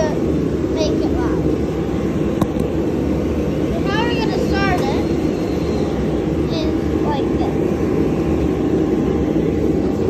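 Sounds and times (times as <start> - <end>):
steady low machine drone: 0.0 - 10.0.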